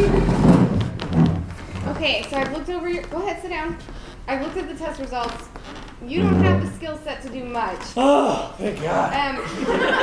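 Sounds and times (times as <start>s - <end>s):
chair thud and shuffle: 0.0s - 7.8s
laughter: 9.4s - 10.0s.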